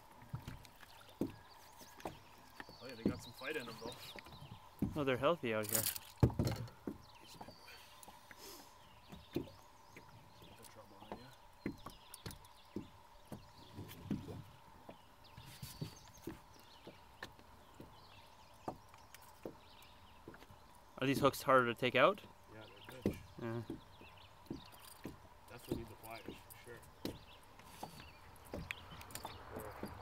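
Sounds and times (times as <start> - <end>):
fish flopping against hull: 0.0 - 18.0.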